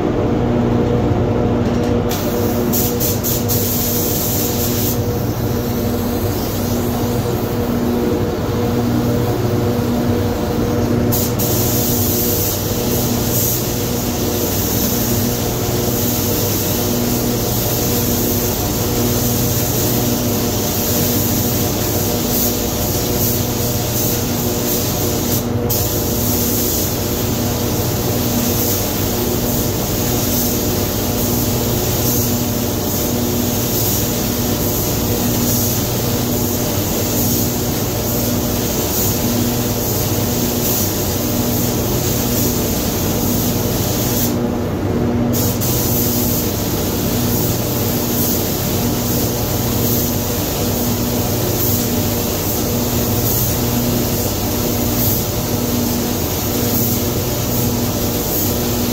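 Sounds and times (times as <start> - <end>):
ventilation hum: 0.0 - 58.9
paint spray gun hissing: 2.1 - 8.0, 9.7 - 44.4, 45.3 - 58.9.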